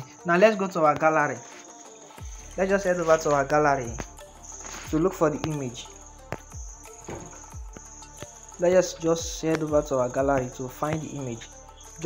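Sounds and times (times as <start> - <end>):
insects chirping trill: 0.0 - 12.0
soft low thumps: 3.0 - 8.6.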